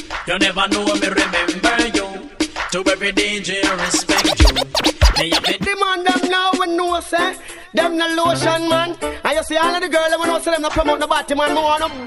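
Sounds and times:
dj mix music: 3.8 - 5.7
turntable scratch effects: 3.8 - 5.7.

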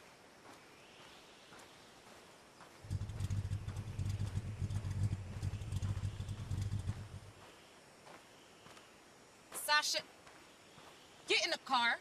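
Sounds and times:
car engine idling: 2.8 - 7.4.

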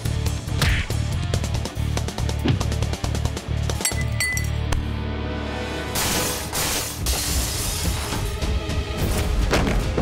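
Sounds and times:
background music with steady beat: 0.0 - 7.0
glassware clinking on bench: 3.8 - 4.6.

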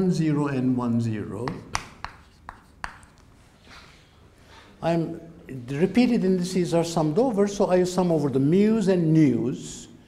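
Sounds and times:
chalk tapping on blackboard: 1.4 - 3.2
chalk scratching: 2.0 - 3.2.

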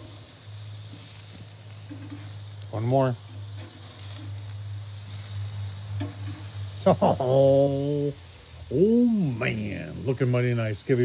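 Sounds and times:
patties sizzling on a grill: 0.0 - 11.0.

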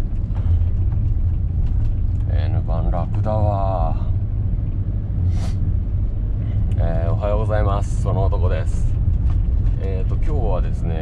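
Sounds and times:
van engine and tyre rumble: 0.0 - 11.0
short hiss: 5.2 - 5.6.

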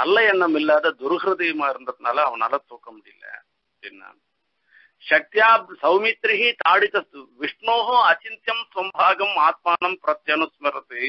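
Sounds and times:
man talking: 0.0 - 4.2, 5.0 - 11.0.

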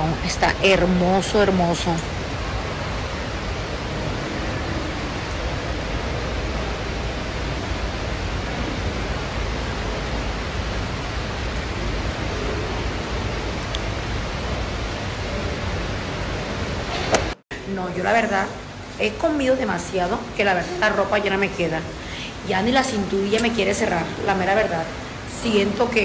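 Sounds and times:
steady rushing noise: 0.0 - 26.0.

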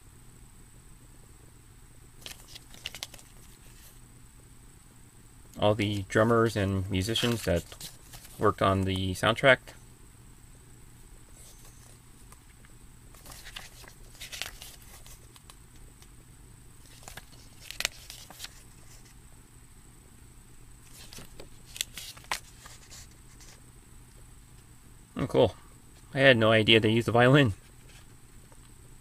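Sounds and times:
paper pages turning: 2.2 - 4.0, 7.0 - 9.1, 11.3 - 12.0, 13.1 - 15.8, 16.8 - 19.2, 20.8 - 23.6.

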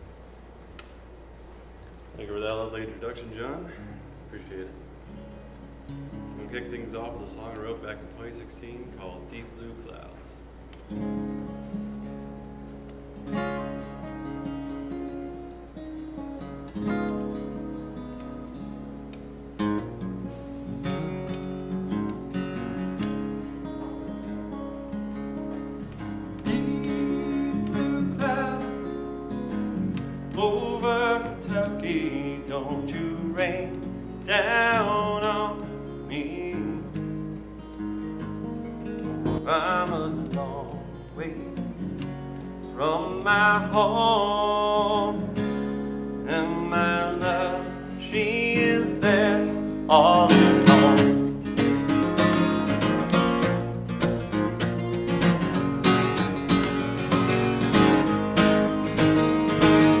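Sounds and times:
acoustic guitar strumming: 1.1 - 60.0
man singing folk song: 2.2 - 4.8, 6.2 - 10.5, 25.8 - 38.3, 39.0 - 60.0.

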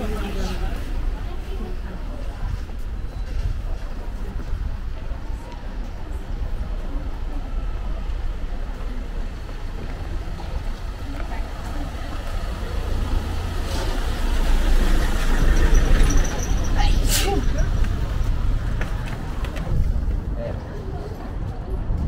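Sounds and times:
passers-by talking: 0.0 - 22.0
van engine and tyre noise: 0.0 - 22.0.

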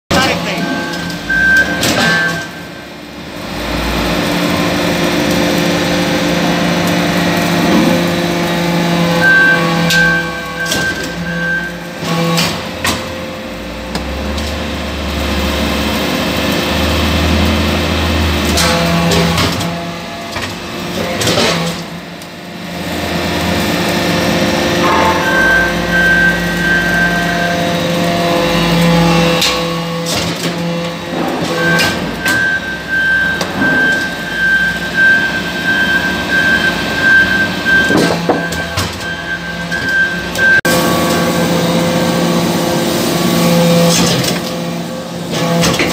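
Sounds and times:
press stroke rumble: 24.6 - 27.2
sharp metallic clanks: 24.8 - 27.2.

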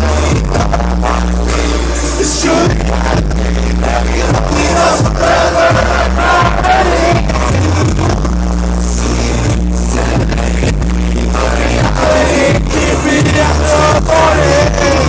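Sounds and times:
heavy sub-bass: 0.0 - 15.0
loud live music over sound system: 0.0 - 15.0
wavering vocal or synth melody: 0.0 - 15.0.

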